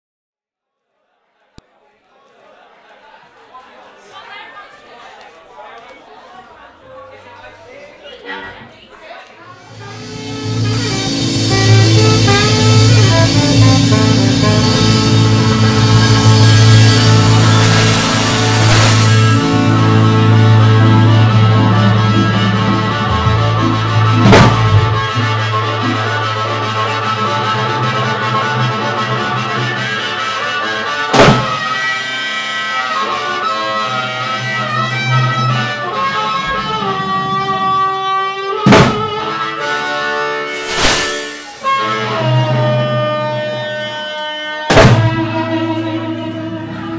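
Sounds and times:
steady bass note: 0:09.5 - 0:27.6
guitar: 0:09.5 - 0:46.9
blues band playing live: 0:09.6 - 0:46.9
loud percussive hits: 0:09.7 - 0:19.6, 0:24.0 - 0:25.1, 0:40.6 - 0:41.8, 0:44.7 - 0:45.2.

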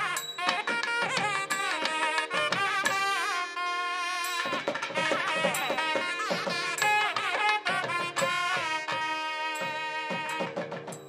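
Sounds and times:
double-reed pipes playing melody: 0:00.0 - 0:10.8
drum strokes: 0:00.0 - 0:11.0.

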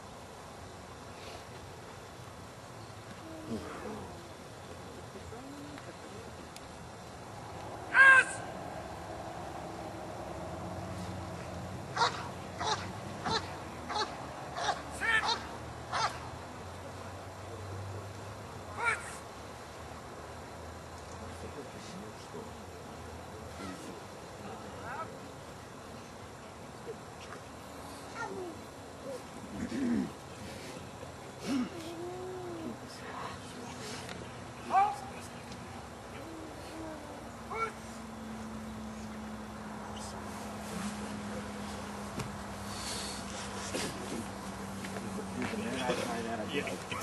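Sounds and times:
short harsh animal calls: 0:07.9 - 0:08.5, 0:12.0 - 0:16.2.

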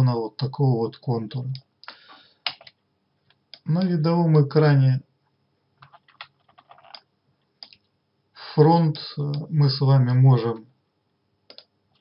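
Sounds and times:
mouse and keyboard clicks: 0:05.8 - 0:07.8, 0:11.5 - 0:12.0.

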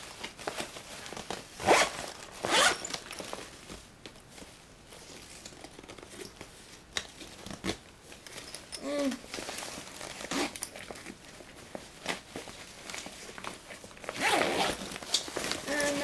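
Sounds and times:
fabric rustling: 0:00.0 - 0:08.4, 0:09.2 - 0:16.0
zipper rasping open: 0:01.6 - 0:03.0, 0:10.2 - 0:10.8, 0:14.1 - 0:14.8.

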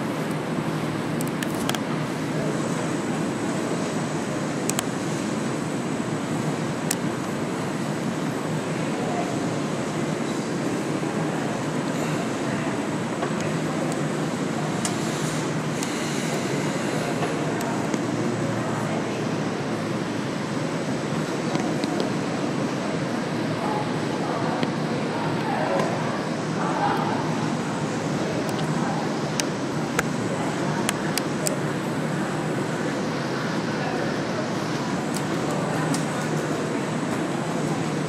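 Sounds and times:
faint indistinct voices: 0:00.0 - 0:38.0.

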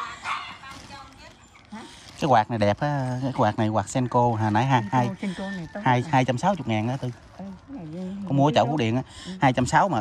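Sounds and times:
dog barking: 0:00.0 - 0:00.8.

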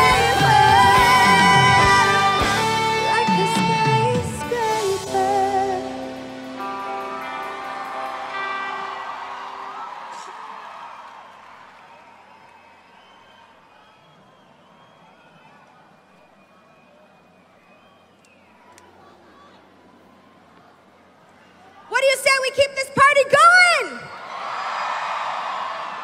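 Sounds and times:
live band chord ringing out: 0:00.0 - 0:10.1
crowd noise with voices: 0:00.0 - 0:26.0.

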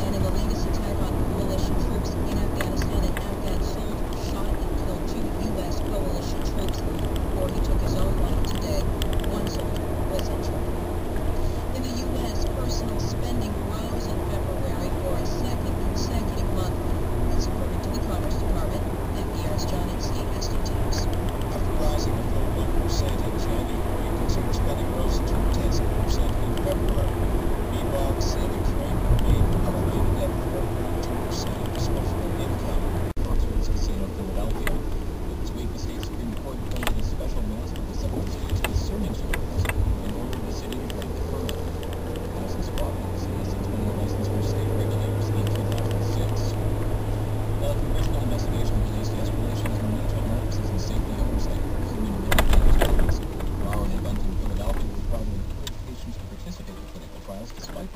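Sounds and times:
car road and engine rumble: 0:00.0 - 0:57.9
talk from car radio: 0:00.0 - 0:57.9.

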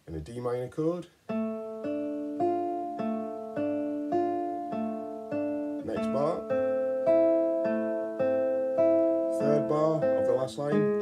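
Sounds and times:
classical guitar arpeggio: 0:01.2 - 0:11.0.

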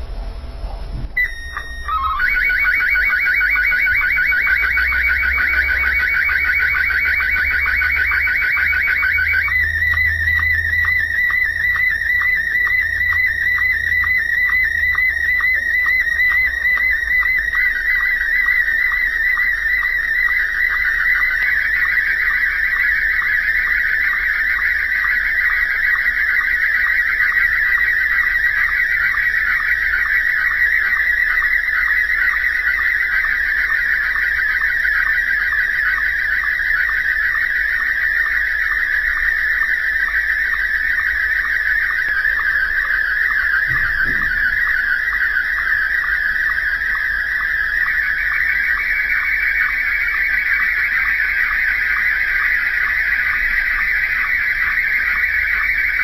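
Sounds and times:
held radio tones: 0:00.4 - 0:23.5, 0:39.3 - 0:47.6
fast ticking sync pulses: 0:01.2 - 0:56.0
warbling chirping tone stream: 0:01.2 - 0:56.0.

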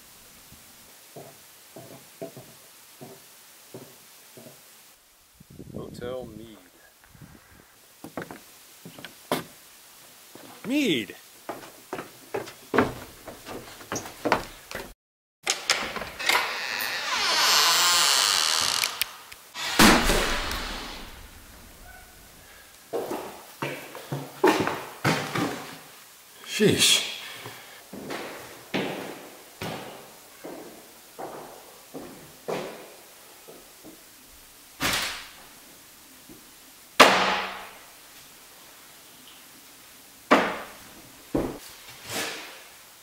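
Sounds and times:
wooden door creaking open: 0:13.9 - 0:21.2
loud sharp bang: 0:19.6 - 0:21.5.

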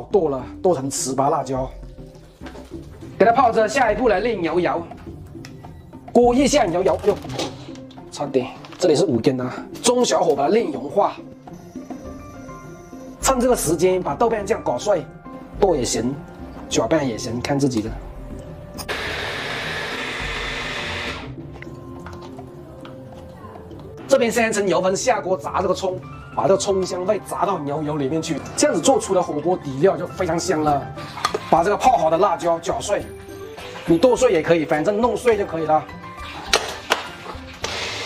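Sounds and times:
electric food chopper running: 0:18.9 - 0:21.4, 0:37.6 - 0:38.0.

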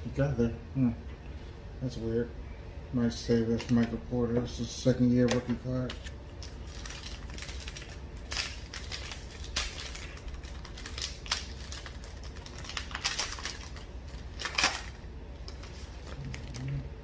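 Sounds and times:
foil wrapper crinkling: 0:05.2 - 0:16.9.

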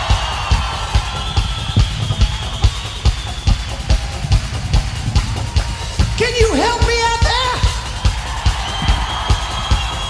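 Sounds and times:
drum beat: 0:00.0 - 0:10.0
rock band playing live: 0:00.0 - 0:10.0.

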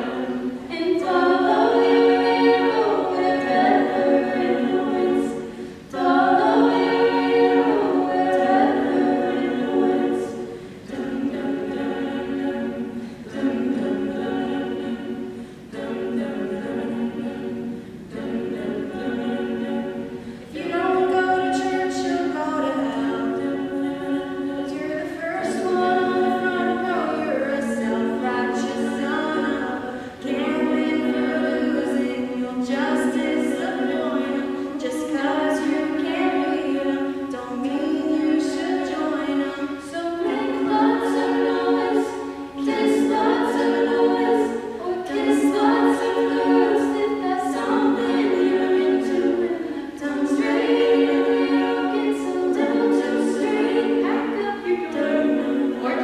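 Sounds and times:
a cappella group singing harmony: 0:00.0 - 0:56.0.

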